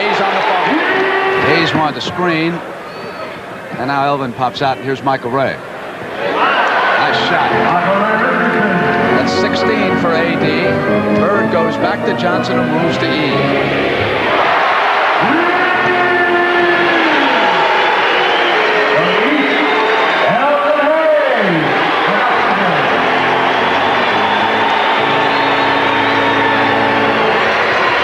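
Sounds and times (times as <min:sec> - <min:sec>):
crowd cheering and applause: 0:00.0 - 0:03.6, 0:06.0 - 0:10.4, 0:11.2 - 0:28.0
music with long held notes: 0:07.2 - 0:14.2.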